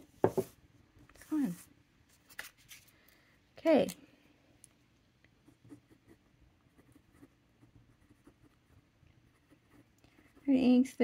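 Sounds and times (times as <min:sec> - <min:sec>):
fountain pen scratching on paper: 0:05.5 - 0:10.8.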